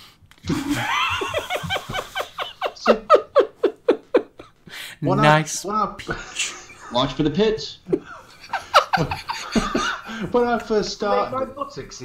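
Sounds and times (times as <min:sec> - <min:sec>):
men laughing: 0:00.4 - 0:04.7, 0:06.0 - 0:11.7.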